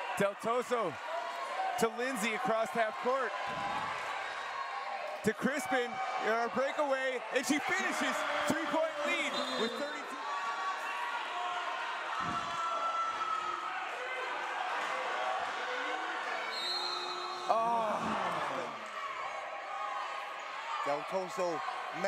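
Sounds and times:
crowd and player voices: 0.0 - 22.0.

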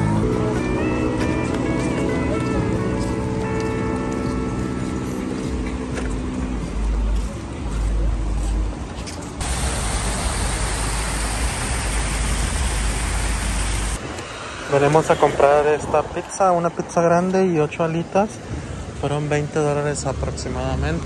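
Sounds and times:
faint music: 0.0 - 9.4
low street rumble: 0.0 - 21.0
waterfall splashing into pool: 9.4 - 14.0.

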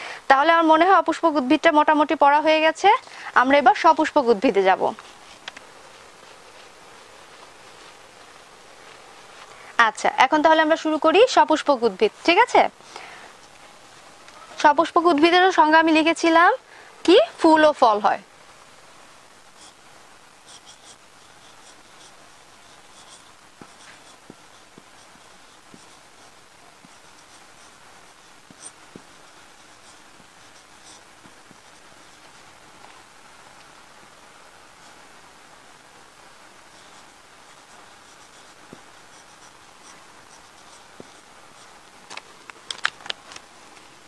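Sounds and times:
marker squeaking on whiteboard: 20.5 - 27.8, 28.5 - 29.1, 36.7 - 41.7.

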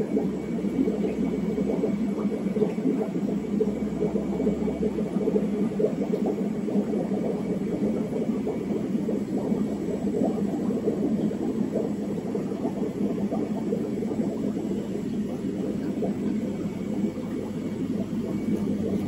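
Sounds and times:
aquarium pumps and filters humming: 0.0 - 19.0.

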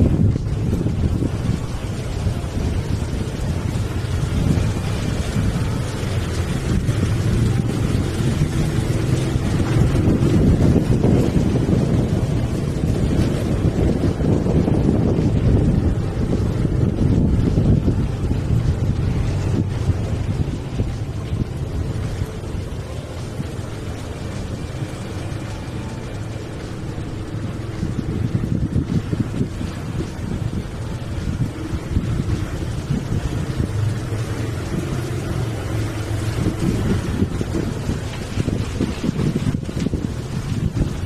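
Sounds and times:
motorcycle running noise: 0.0 - 41.0
wind buffeting microphone: 0.0 - 41.0.

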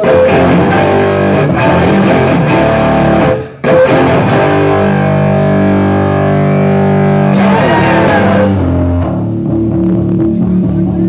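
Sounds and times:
distorted electric guitar: 0.0 - 11.0.

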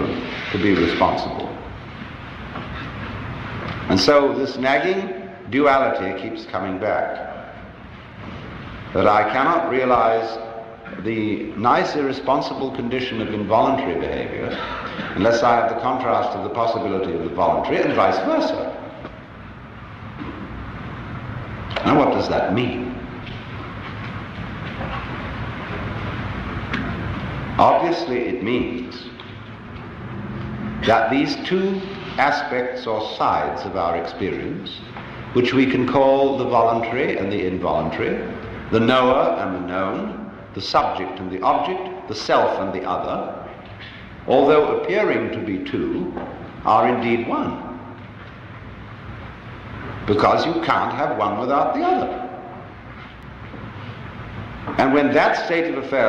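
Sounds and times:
person speaking: 0.0 - 1.8, 8.9 - 19.2, 21.7 - 23.4, 27.0 - 29.3, 30.4 - 48.1, 49.9 - 52.8, 54.6 - 56.0
recording hiss: 0.0 - 56.0.

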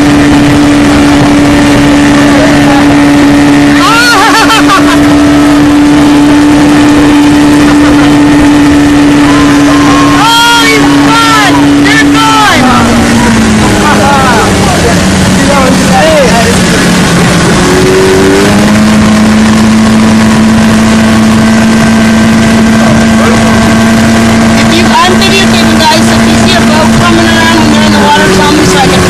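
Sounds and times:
outboard motor running: 0.0 - 29.0
rush of boat wake: 0.0 - 29.0
people shouting and whooping: 3.7 - 5.1, 9.1 - 14.8.

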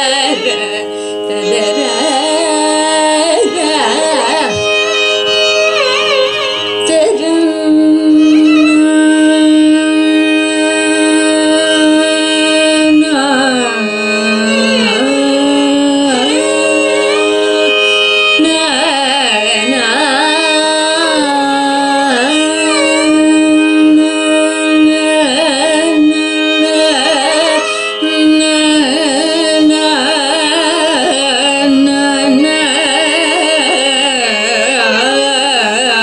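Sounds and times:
violin accompaniment: 0.0 - 36.0
woman singing a long note: 6.8 - 17.7, 18.4 - 33.6.

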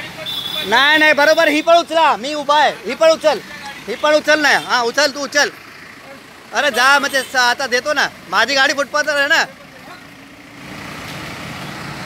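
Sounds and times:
truck engine running: 0.8 - 12.0.

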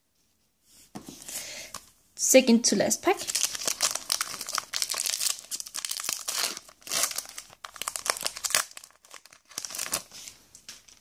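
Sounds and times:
foil wrapper crinkling and tearing: 3.2 - 11.0.

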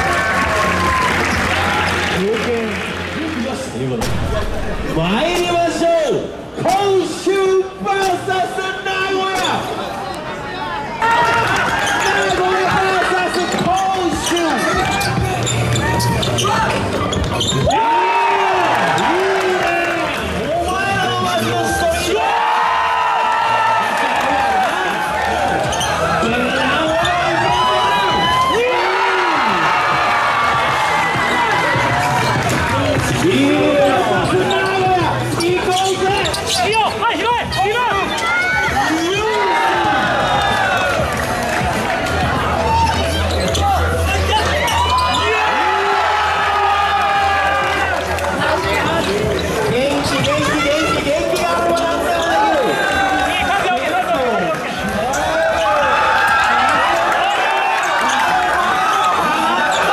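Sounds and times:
music: 0.0 - 5.7, 11.1 - 55.3
sneakers squeaking: 11.4 - 17.8, 25.5 - 28.5, 31.2 - 40.5, 41.7 - 45.5, 48.4 - 53.4, 54.9 - 59.9.

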